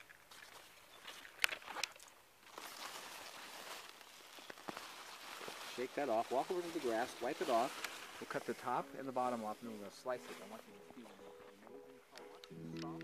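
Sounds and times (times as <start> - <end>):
leaves and mulch rustling: 2.4 - 11.5.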